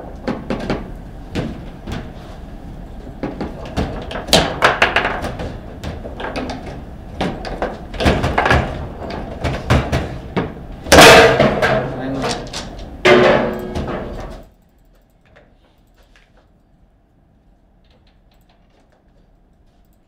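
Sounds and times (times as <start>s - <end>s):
foosball ball clacking: 3.1s - 12.0s, 13.1s - 14.4s.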